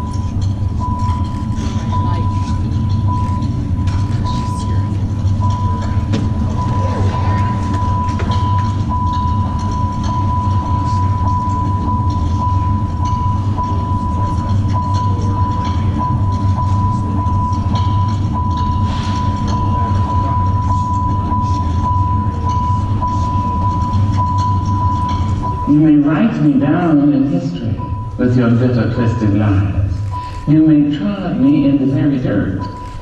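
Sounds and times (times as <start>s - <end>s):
constant high-pitched tone: 0.0s - 33.0s.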